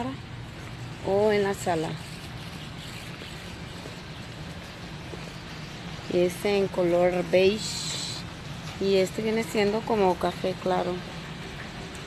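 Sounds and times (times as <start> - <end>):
store interior hum and hiss: 0.0 - 12.0.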